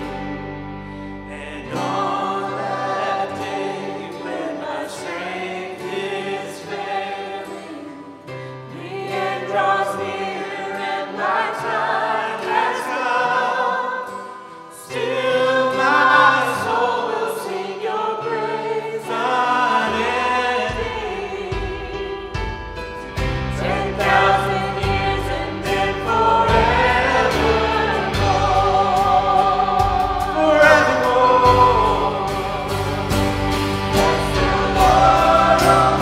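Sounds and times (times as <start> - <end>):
acoustic guitar: 0.0 - 36.0
group singing worship song: 0.0 - 36.0
low bass notes: 23.2 - 36.0.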